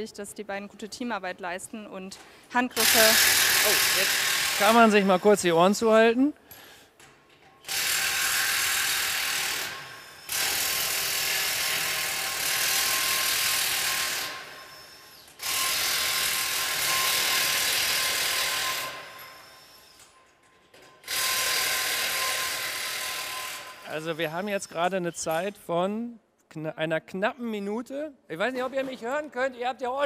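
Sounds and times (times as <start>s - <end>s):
impact wrench hammering: 2.8s - 5.4s.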